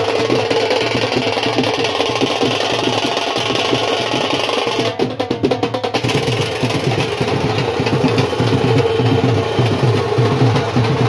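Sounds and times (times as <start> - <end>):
light drumming: 0.0 - 11.0.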